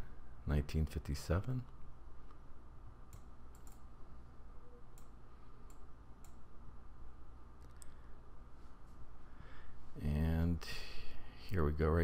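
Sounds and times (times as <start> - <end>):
faint computer mouse clicks: 3.1 - 3.8.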